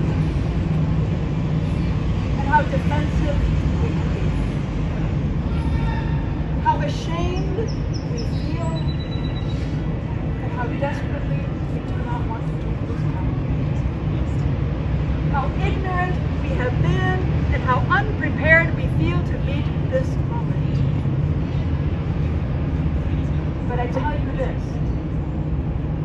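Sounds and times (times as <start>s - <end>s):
faint voices talking: 0.0s - 25.7s
city traffic rumble: 0.0s - 26.0s.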